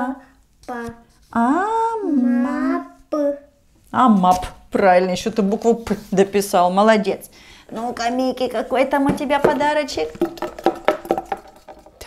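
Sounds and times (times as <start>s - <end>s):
candy rattling in cardboard box: 10.1s - 12.0s.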